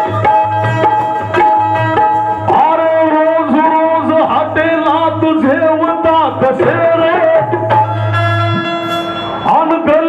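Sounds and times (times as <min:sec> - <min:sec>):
harmonium reed note: 0:00.0 - 0:10.0
man singing into microphone: 0:02.5 - 0:07.8.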